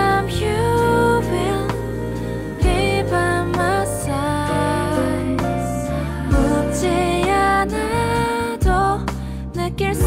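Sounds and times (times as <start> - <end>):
soul song playing: 0.0 - 10.0.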